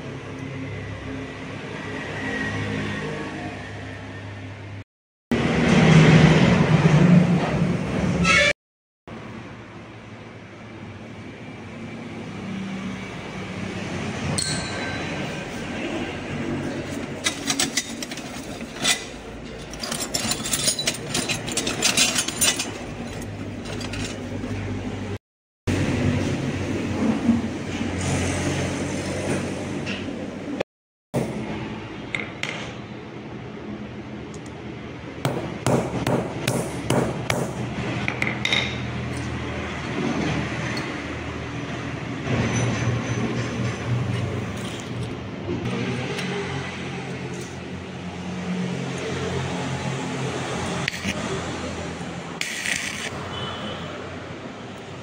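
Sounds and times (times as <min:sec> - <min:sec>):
metallic clinks and taps: 0:14.4 - 0:15.4.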